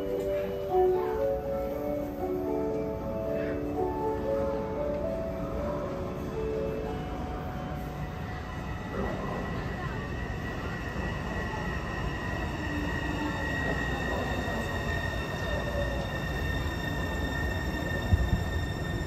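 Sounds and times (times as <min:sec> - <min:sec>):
train rumble in tunnel: 0:00.0 - 0:19.0.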